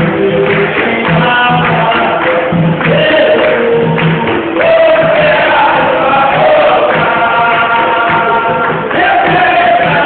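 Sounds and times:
group singing in unison: 0.0 - 10.0
hand drum beating: 0.0 - 10.0.

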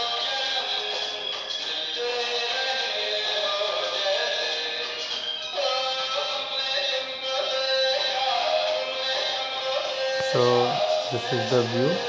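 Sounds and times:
song through small speaker: 0.0 - 12.0.

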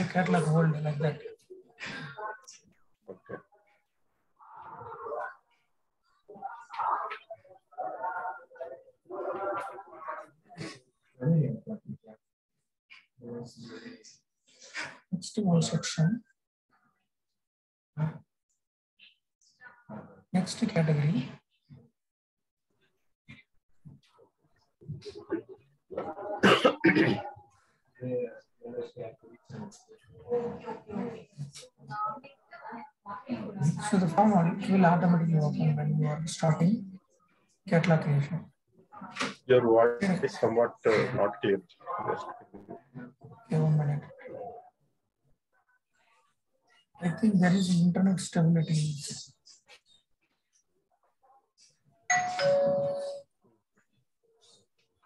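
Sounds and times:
person coughing: 26.4 - 27.3
two-note chime: 52.1 - 53.2.

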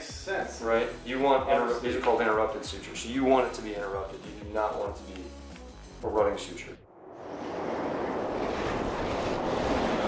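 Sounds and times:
steady rushing noise: 7.0 - 10.0.

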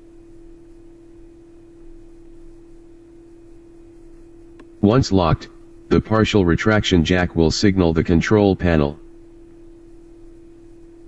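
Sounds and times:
faint background hiss: 0.0 - 11.0
steady hum: 0.0 - 11.0.

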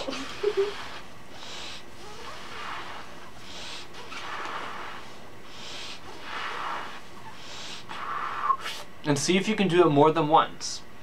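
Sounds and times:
person breathing: 0.4 - 8.9.

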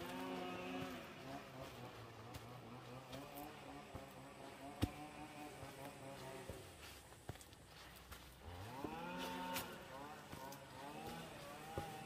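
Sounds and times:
footsteps on dirt path: 0.0 - 12.0.

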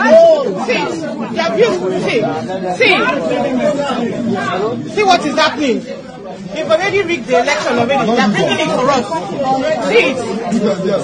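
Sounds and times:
people chattering excitedly: 0.0 - 11.0.

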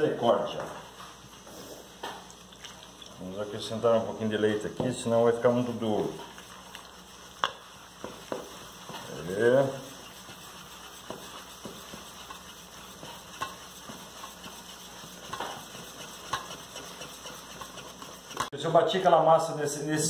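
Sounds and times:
whisk swishing batter: 0.0 - 19.9
whisk clicking against metal bowl: 6.2 - 18.5.

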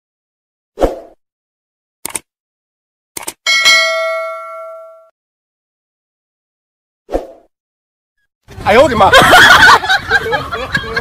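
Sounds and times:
short clicks: 2.0 - 2.3, 3.2 - 3.4
notification bell ding: 3.5 - 5.1.

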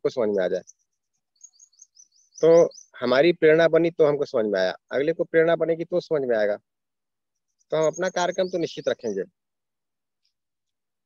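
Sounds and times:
bird chirping: 0.0 - 11.0
person speaking: 7.7 - 9.4.

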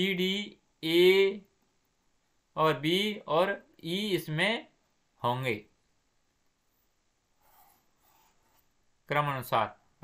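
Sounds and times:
pen scratching on paper: 7.4 - 8.8.

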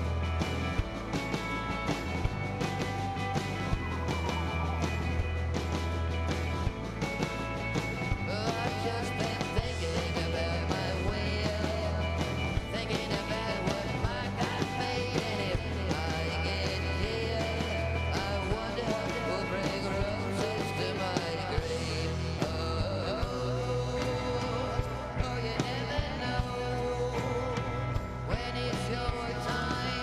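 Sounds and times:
live rock band playing: 0.0 - 30.0.

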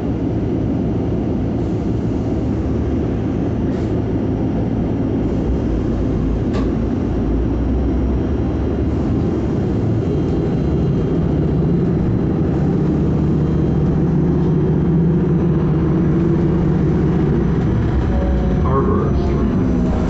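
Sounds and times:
bus engine and road rumble: 0.0 - 20.0.

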